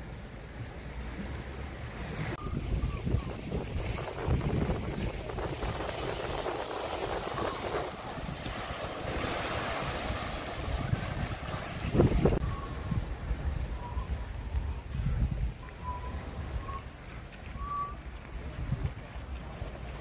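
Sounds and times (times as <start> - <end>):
small waves washing over rocks: 1.2 - 12.4
wind buffeting microphone: 2.0 - 20.0.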